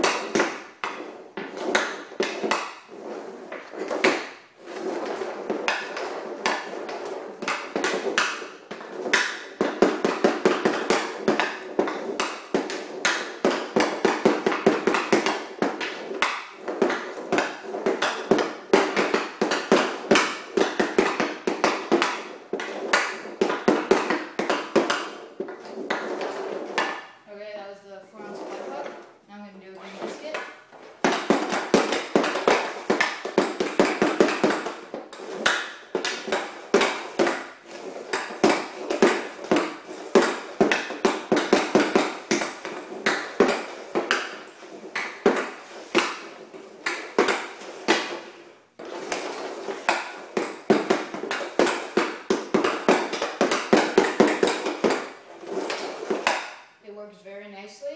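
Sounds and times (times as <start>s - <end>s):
hockey stick clacking puck: 0.0s - 27.2s, 28.0s - 56.8s.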